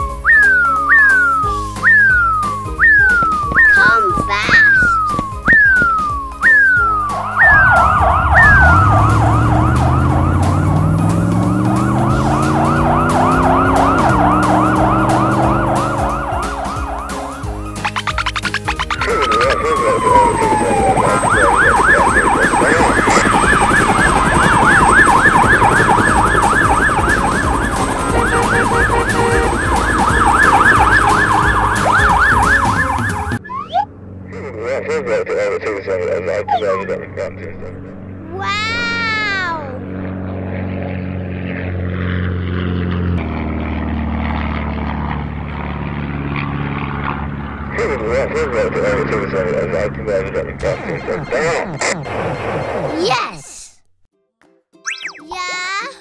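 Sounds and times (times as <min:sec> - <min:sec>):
low rising tone: 0:00.0 - 0:27.8
cartoon siren wailing and yelping: 0:00.2 - 0:33.9, 0:36.4 - 0:37.1, 0:38.3 - 0:39.8.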